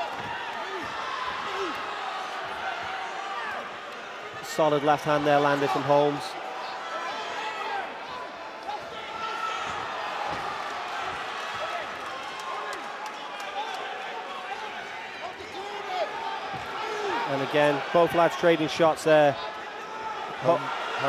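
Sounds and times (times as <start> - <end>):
crowd shouting: 0.0 - 21.0.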